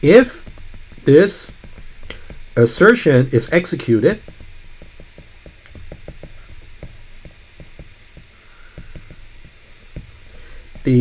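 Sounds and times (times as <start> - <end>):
stylus tapping on glass screen: 4.1 - 11.0.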